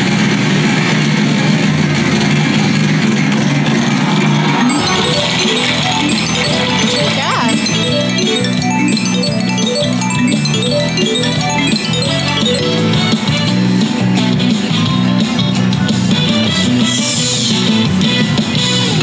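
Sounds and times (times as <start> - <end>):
slot machine electronic music: 2.2 - 19.0
win fanfare of repeating chimes: 4.0 - 13.8.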